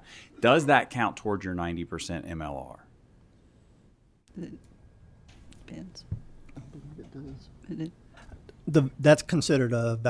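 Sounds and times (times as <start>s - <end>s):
soft knock: 6.0s - 7.4s.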